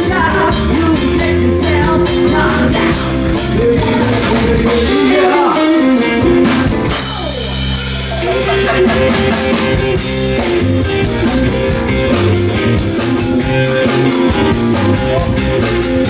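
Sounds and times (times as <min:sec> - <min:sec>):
woman singing: 0:00.0 - 0:05.8
live jazz-blues band: 0:00.0 - 0:16.0.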